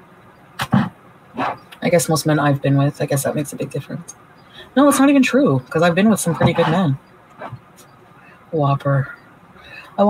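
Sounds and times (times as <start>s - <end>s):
woman speaking: 1.8s - 7.6s, 8.5s - 10.0s.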